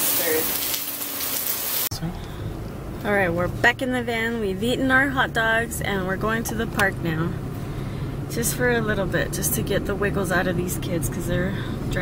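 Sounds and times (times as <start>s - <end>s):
food sizzling in a frying pan: 0.0s - 1.9s
van cabin rumble: 1.9s - 12.0s.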